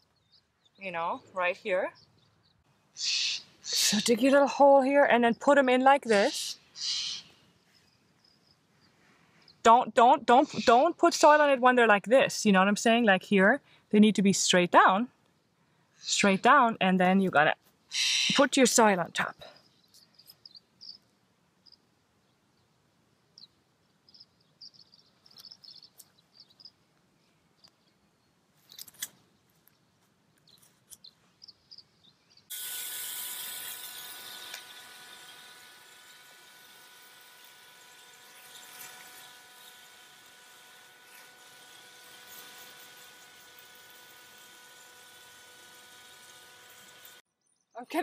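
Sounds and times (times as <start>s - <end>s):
faint bird chirps: 23.4s - 28.3s
hose spraying water onto soil: 32.5s - 47.2s.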